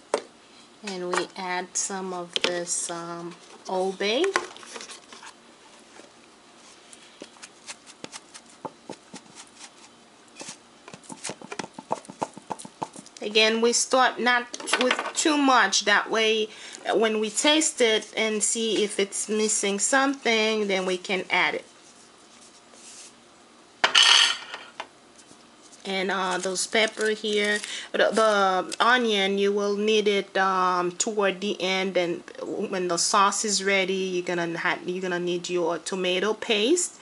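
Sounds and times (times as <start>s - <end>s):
metal kitchenware clattering: 23.8s - 24.7s.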